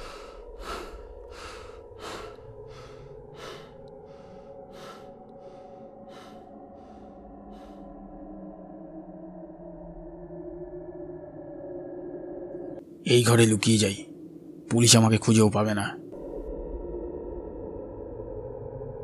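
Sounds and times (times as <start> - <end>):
low music drone: 0.0 - 19.0.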